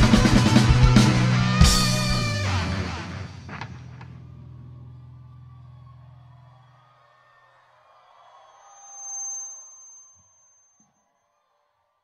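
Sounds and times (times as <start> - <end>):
bass and guitar chord ringing: 0.0 - 6.5
thin high tone: 8.3 - 11.3.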